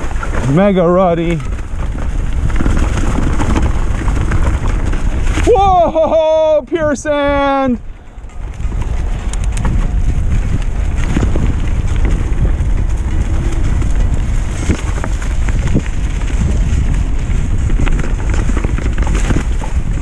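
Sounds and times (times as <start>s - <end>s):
bike knocks and rattles: 0.0s - 20.0s
bike tyre and ride noise: 0.0s - 20.0s
wind buffeting microphone: 0.0s - 20.0s.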